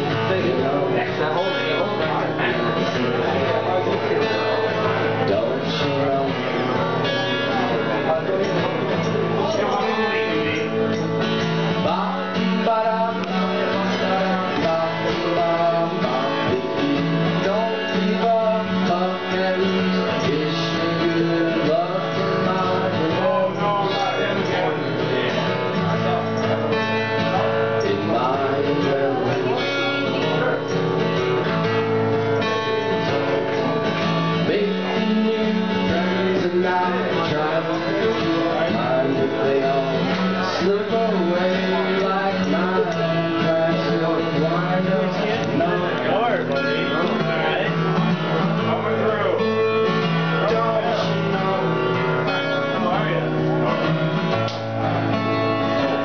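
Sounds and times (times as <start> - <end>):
acoustic guitar: 0.0 - 56.0
man singing: 0.0 - 56.0.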